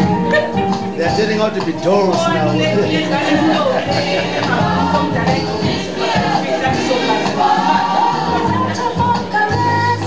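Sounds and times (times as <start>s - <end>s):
gospel choir singing: 1.1s - 10.0s.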